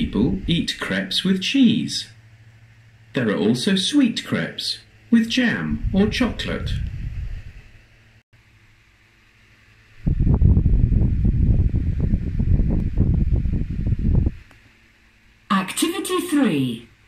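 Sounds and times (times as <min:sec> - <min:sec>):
low buffeting rumble on microphone: 0:00.0 - 0:00.9, 0:05.4 - 0:08.2, 0:09.9 - 0:14.9.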